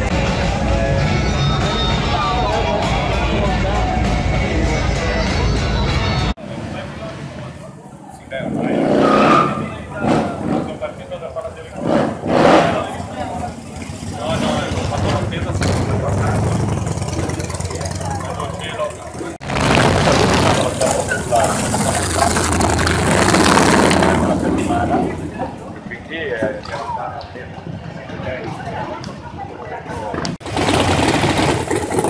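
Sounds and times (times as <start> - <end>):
people talking: 0.0 - 30.4
motorcycle engines running: 6.5 - 29.4, 30.0 - 32.0.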